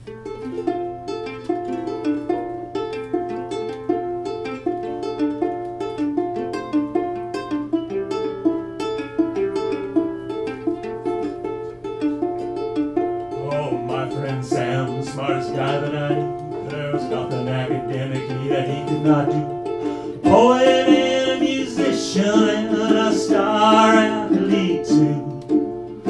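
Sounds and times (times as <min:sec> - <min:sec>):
ukulele plucked chords: 0:00.0 - 0:26.0.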